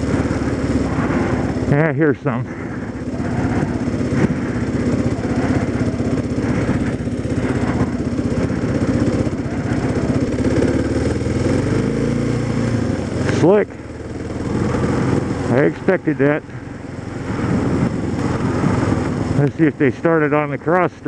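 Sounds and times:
motorcycle engine cruising: 0.0 - 21.0
wind and road noise: 0.0 - 21.0.

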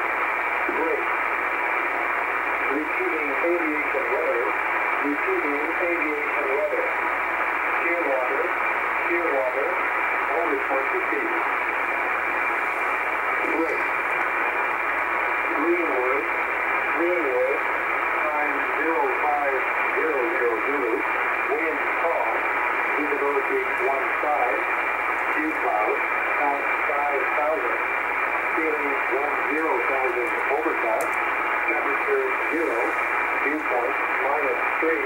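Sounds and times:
radio static hiss: 0.0 - 35.0
person speaking over radio: 0.7 - 1.1, 2.7 - 7.0, 7.8 - 11.5, 13.4 - 14.1, 15.4 - 35.0.

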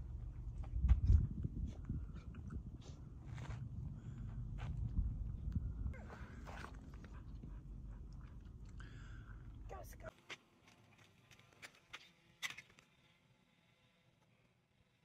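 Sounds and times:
wind rumble on microphone: 0.0 - 8.7.

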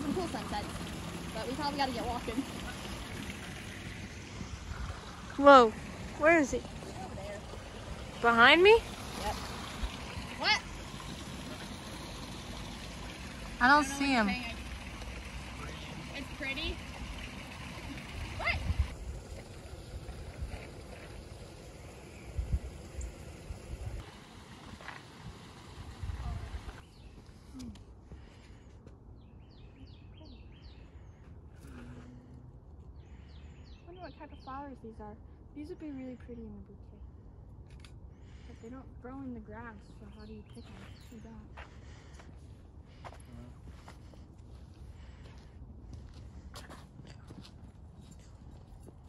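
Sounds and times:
creek water rushing: 0.0 - 26.8
steady outdoor hiss: 0.0 - 28.6
wind rumble on microphone: 18.1 - 26.8.

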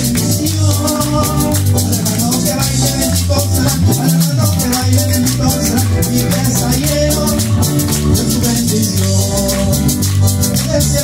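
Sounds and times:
bass line: 0.0 - 11.0
electric guitar: 0.0 - 11.0
electronic keyboards: 0.0 - 11.0
live band music: 0.0 - 11.0
shaker-like beat: 0.0 - 11.0.

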